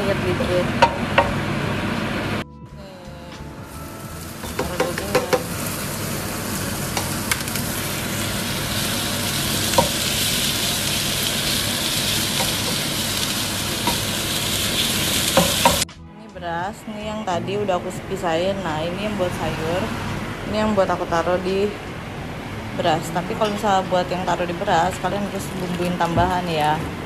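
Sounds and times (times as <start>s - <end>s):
meat sizzling in hot oil: 3.6s - 15.9s
spatula knocking on pan: 4.4s - 5.6s.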